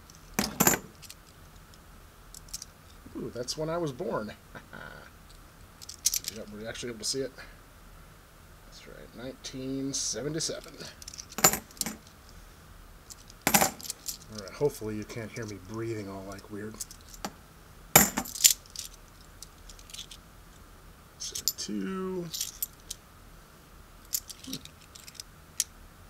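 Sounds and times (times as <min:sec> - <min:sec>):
coins clinking: 0:00.1 - 0:01.2, 0:05.8 - 0:06.4, 0:11.0 - 0:12.1, 0:13.1 - 0:14.5, 0:18.0 - 0:20.2, 0:22.3 - 0:23.0, 0:24.1 - 0:25.2.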